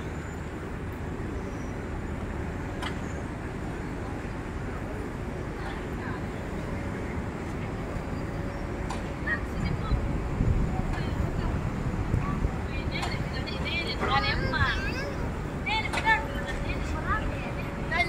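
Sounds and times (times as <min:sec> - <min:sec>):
faint indistinct voices: 0:00.0 - 0:18.0
steady low rumble: 0:03.3 - 0:18.0.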